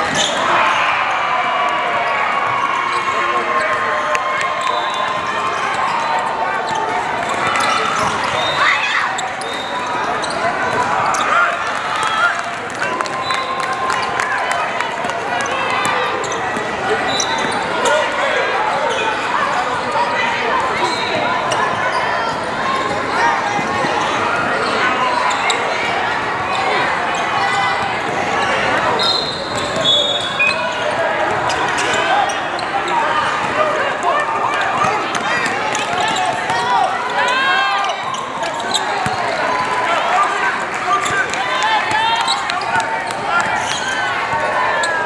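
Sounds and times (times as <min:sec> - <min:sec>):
hubbub of voices: 0:00.0 - 0:45.0.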